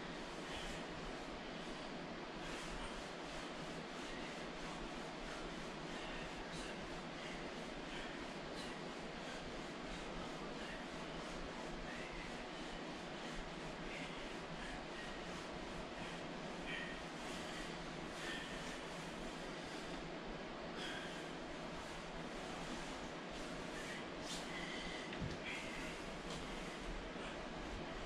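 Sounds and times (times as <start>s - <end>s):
steady background hiss: 0.0s - 28.0s.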